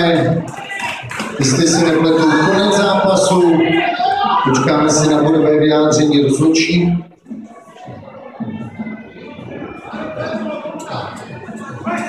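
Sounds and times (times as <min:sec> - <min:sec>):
people talking: 0:00.0 - 0:07.0
music playing: 0:00.0 - 0:12.0.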